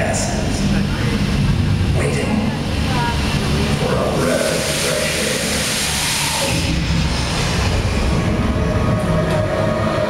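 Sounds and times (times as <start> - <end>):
indistinct voices: 0.0 - 10.0
low fire rumble: 0.0 - 10.0.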